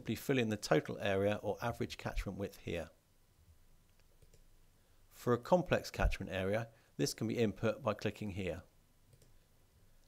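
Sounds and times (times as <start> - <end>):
faint clicks: 9.1 - 9.4.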